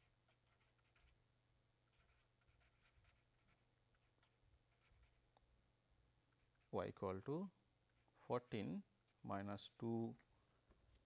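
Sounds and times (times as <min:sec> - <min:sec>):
pen scratching on paper: 0:00.0 - 0:01.2, 0:01.8 - 0:05.3.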